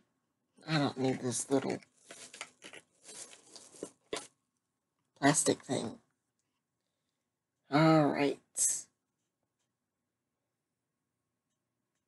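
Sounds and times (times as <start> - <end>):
plastic crinkling and tearing: 2.0 - 4.3.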